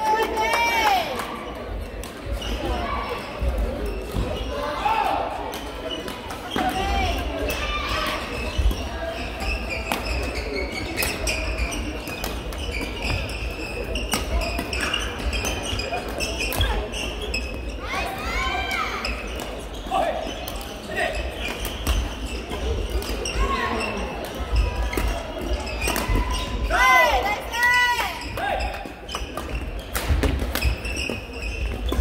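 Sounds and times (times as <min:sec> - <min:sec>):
rackets hitting shuttlecock: 0:24.2 - 0:26.2, 0:28.8 - 0:32.0.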